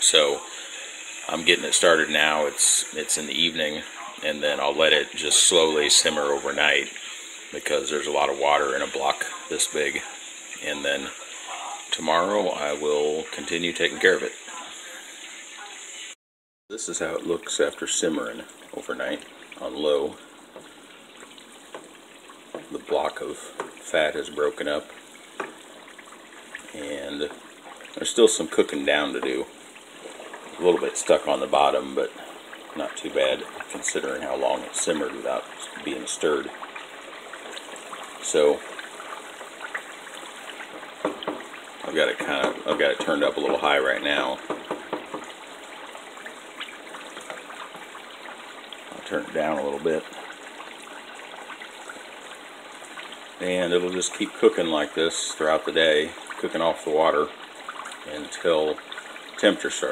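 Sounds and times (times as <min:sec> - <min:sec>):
pot of fat bubbling softly: 0:00.0 - 0:59.9.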